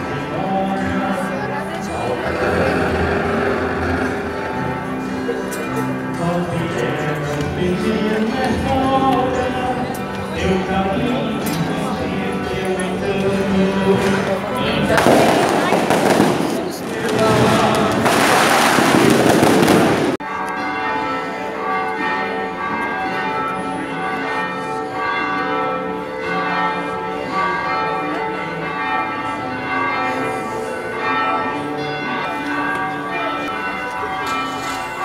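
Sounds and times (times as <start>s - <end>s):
church bells ringing: 0.0s - 35.0s
fireworks crackling and banging: 14.0s - 20.2s.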